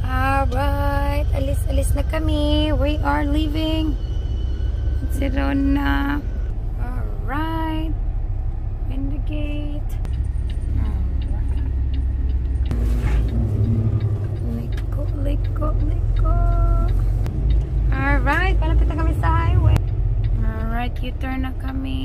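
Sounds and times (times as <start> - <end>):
truck diesel engine drone: 0.0 - 22.0.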